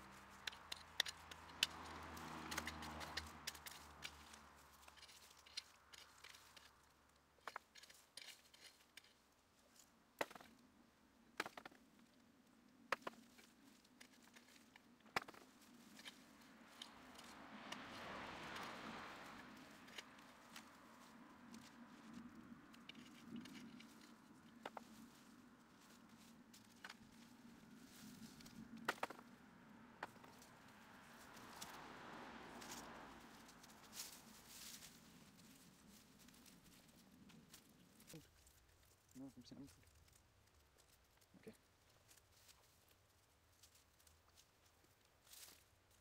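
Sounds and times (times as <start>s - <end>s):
hand hoe scraping dry soil: 0.0s - 6.8s, 7.4s - 10.5s, 19.6s - 29.3s.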